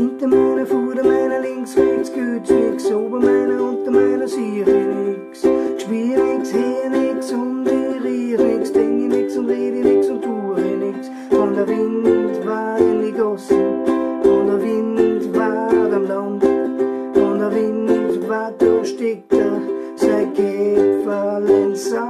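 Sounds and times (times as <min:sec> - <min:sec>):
ukulele strummed reggae rhythm: 0:00.0 - 0:22.0.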